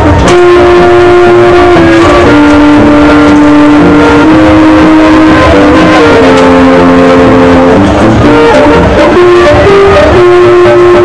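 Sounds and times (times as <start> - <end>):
brass band playing slow tune: 0.0 - 11.0.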